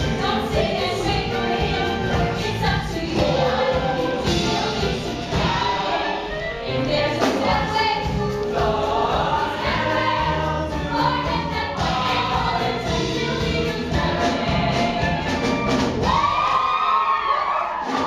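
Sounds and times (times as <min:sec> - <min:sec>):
ensemble singing in chorus: 0:00.0 - 0:16.3
live band playing: 0:00.0 - 0:16.4.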